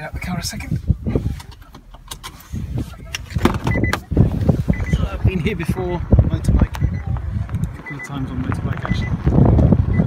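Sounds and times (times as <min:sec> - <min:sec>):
wind noise on microphone: 0:00.0 - 0:10.0
handling noise rumbling: 0:00.4 - 0:10.0.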